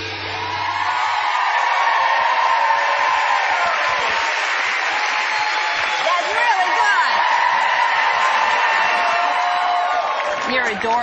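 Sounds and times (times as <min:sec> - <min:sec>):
audience applauding and cheering: 0:00.0 - 0:11.0.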